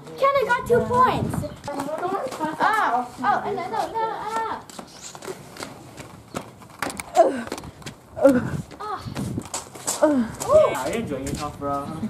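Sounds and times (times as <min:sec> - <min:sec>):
footsteps on paving: 0:00.0 - 0:12.0.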